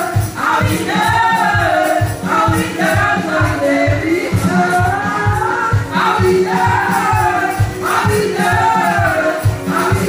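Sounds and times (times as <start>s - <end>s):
steady drum beat: 0.0s - 10.0s
voices singing together: 0.0s - 10.0s.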